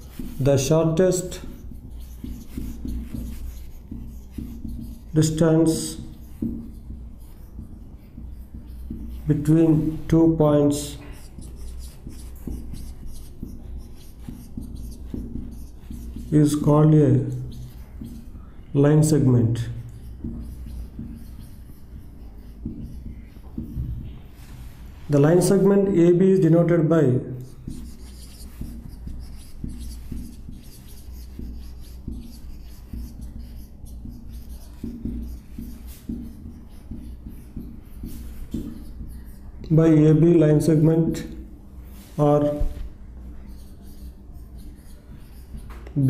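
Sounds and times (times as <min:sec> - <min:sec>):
faint marker squeaks: 0:00.0 - 0:24.4, 0:27.4 - 0:41.3, 0:42.2 - 0:46.0
marker writing on a whiteboard: 0:00.0 - 0:46.0.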